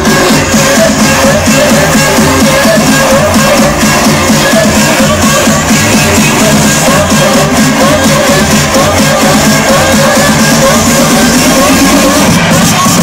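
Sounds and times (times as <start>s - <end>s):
techno dance music: 0.0s - 13.0s.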